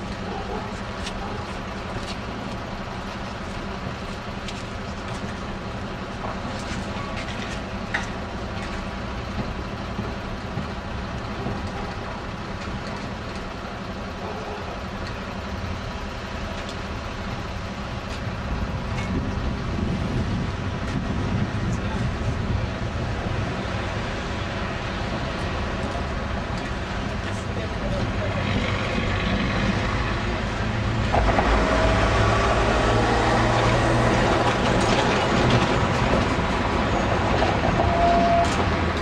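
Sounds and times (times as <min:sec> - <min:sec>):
rail clicks: 0:00.0 - 0:15.4, 0:20.8 - 0:39.0
tram rumbling on rails: 0:00.0 - 0:39.0
tram wheel squeal: 0:27.8 - 0:39.0.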